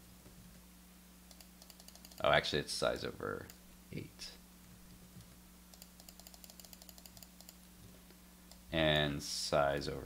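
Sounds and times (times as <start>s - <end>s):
low electrical hum: 0.0s - 10.0s
computer keys clicking: 1.3s - 2.3s, 5.2s - 7.7s.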